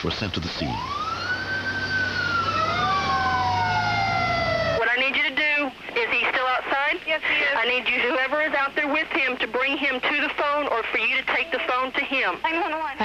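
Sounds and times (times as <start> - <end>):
engine rumbling: 0.0 - 5.0
ambulance siren wailing: 0.6 - 4.8
second siren tone: 0.7 - 4.8.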